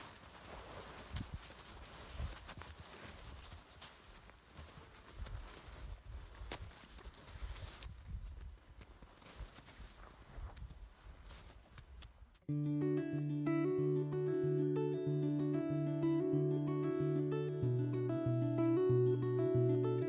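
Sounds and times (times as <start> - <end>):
wind rumbling on microphone: 5.2 - 8.8.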